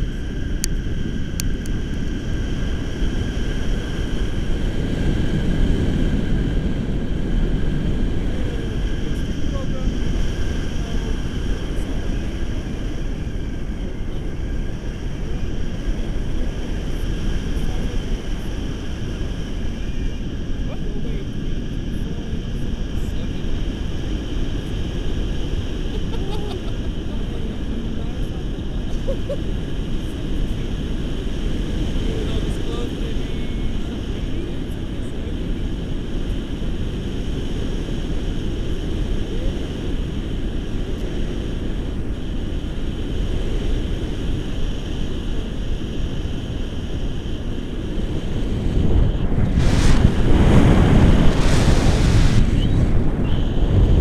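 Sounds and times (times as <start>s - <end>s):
wind buffeting microphone: 0.0s - 54.0s.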